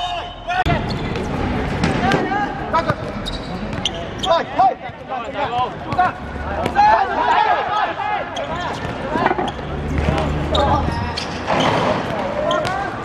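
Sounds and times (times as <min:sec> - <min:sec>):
players shouting: 0:01.8 - 0:13.0.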